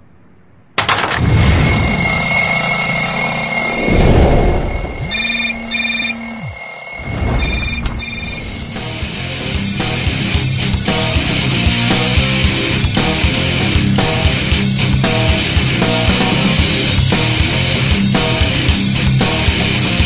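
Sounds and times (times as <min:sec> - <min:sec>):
mobile phone alarm ringing: 0:01.0 - 0:11.3
loud music: 0:04.7 - 0:20.0.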